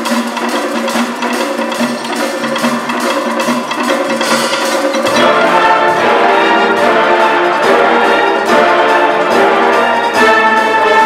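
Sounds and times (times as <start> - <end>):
concert band playing: 0.0 - 11.0
brass sustained chords: 5.1 - 11.0.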